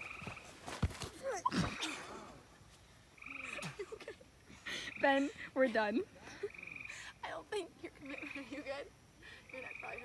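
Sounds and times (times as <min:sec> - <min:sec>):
frog trilling: 0:03.2 - 0:03.6, 0:06.5 - 0:07.1, 0:08.0 - 0:08.6, 0:09.5 - 0:10.0.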